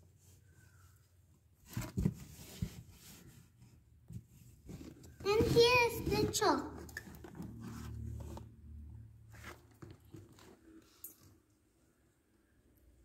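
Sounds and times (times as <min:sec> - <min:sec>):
rustling and scraping handling noise: 0:00.0 - 0:11.7.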